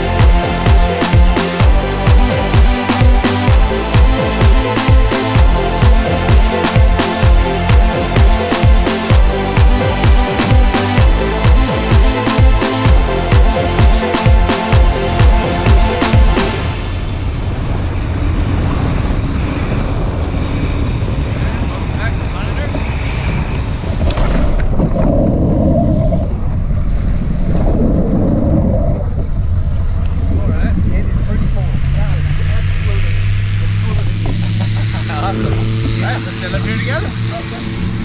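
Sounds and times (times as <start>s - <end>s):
wind rushing over microphone: 16.6s - 38.0s
low steady hum: 22.8s - 38.0s.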